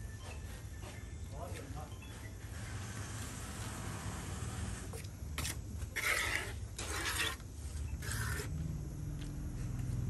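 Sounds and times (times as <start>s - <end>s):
trowel scraping mortar on tile: 5.0s - 8.6s.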